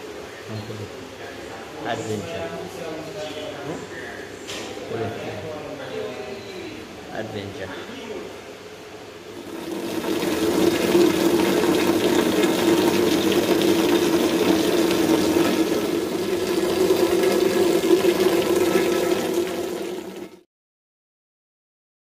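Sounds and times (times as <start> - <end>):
water pouring and splashing: 9.3 - 20.4.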